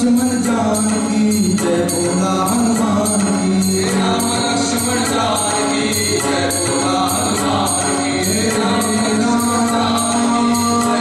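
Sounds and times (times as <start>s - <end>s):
men singing devotional song: 0.0s - 11.0s
steady drum beat: 0.0s - 11.0s
sustained accompaniment: 0.0s - 11.0s.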